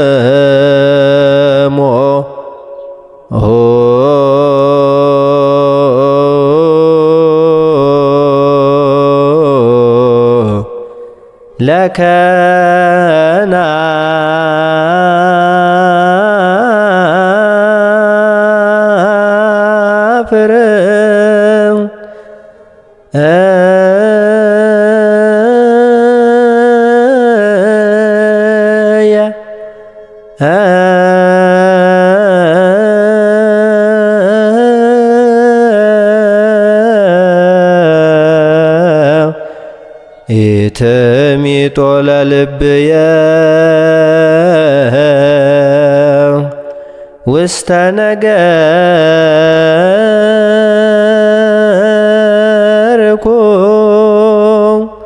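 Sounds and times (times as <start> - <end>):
low male voice chanting: 0.0 - 22.0
solo voice chanting: 0.0 - 55.0.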